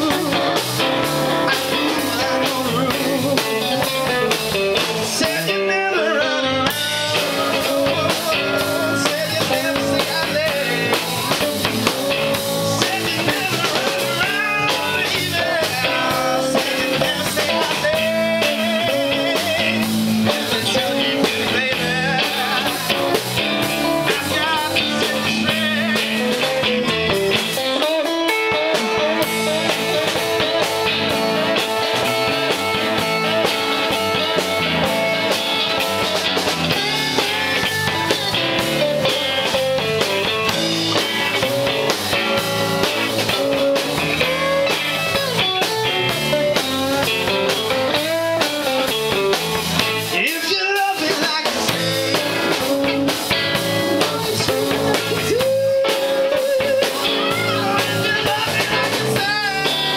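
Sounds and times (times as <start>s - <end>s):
electric guitar held notes: 0.0s - 50.2s, 51.2s - 59.9s
blues-rock band playing: 0.0s - 59.9s.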